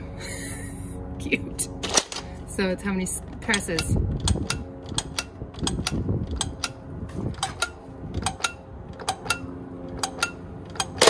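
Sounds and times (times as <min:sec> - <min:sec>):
plastic toy mechanism clicking: 0:03.5 - 0:06.8.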